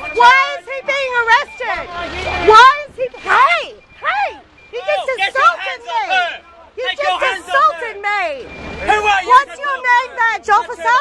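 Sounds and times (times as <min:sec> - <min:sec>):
people shouting: 0:00.0 - 0:11.0.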